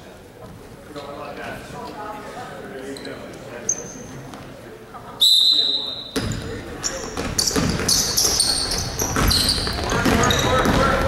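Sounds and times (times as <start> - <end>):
voices in a gym: 0.0 - 11.0
referee's whistle blast: 5.2 - 6.2.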